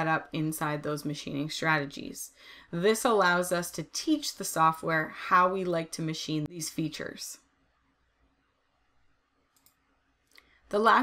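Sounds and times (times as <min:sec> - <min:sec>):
faint clicks: 0:09.5 - 0:10.6.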